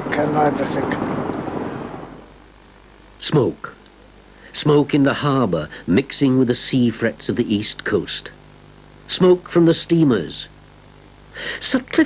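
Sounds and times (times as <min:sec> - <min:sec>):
rushing rumbling noise: 0:00.0 - 0:02.4
faint low hiss: 0:00.0 - 0:12.0.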